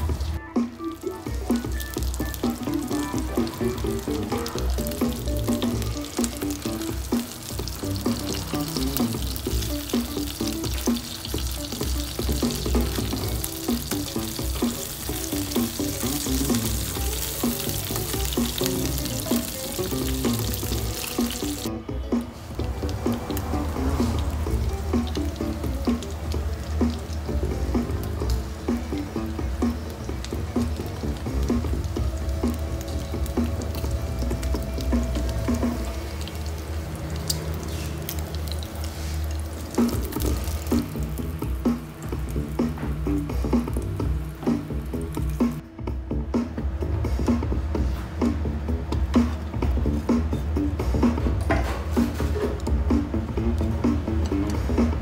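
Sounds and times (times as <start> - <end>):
food frying in oil: 0.0 - 21.7, 22.4 - 45.6
background music: 0.0 - 55.0.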